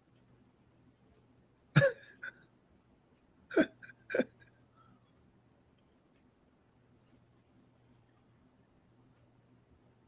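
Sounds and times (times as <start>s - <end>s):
man laughing: 1.8s - 2.4s, 3.5s - 4.6s.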